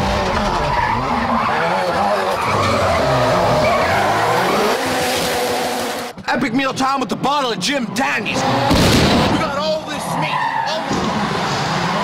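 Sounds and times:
car engine revving: 0.0s - 6.2s, 7.0s - 12.0s
tyres squealing: 0.3s - 5.6s, 9.3s - 11.2s.

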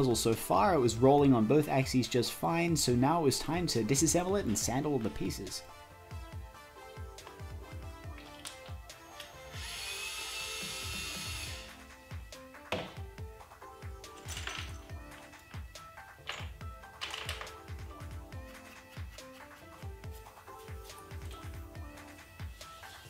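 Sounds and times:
background music with steady beat: 0.0s - 23.0s
cordless drill running: 9.2s - 11.8s.

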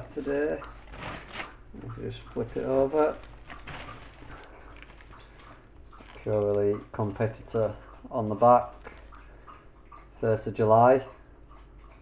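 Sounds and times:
handling noise: 0.0s - 7.3s
fabric rustling: 0.2s - 6.5s.

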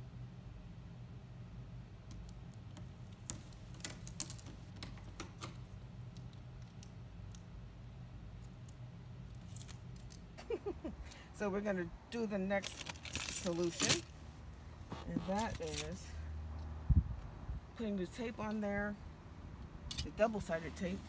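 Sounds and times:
steady low hum: 0.0s - 21.0s
tape clicks and snips: 2.0s - 7.5s.

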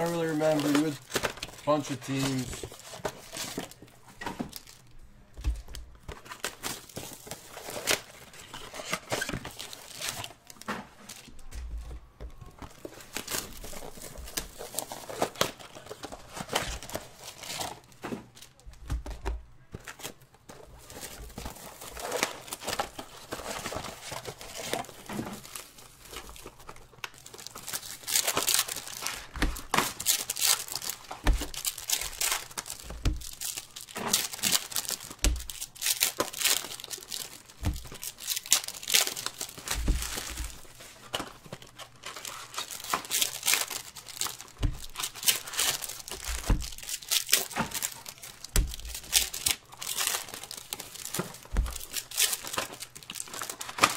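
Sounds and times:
foil wrappers crinkling and tearing: 0.0s - 4.9s, 5.6s - 11.5s, 12.6s - 18.8s, 19.8s - 53.9s.

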